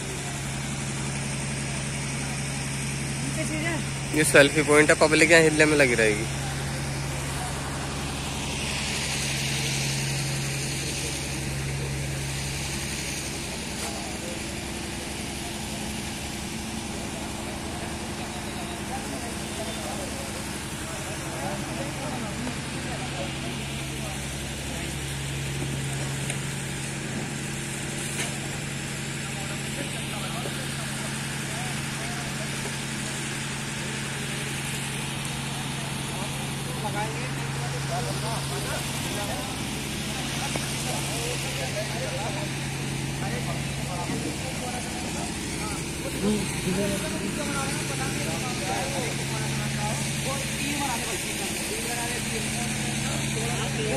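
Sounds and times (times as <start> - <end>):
engine humming: 0.0 - 53.9
indistinct voices: 29.0 - 53.9.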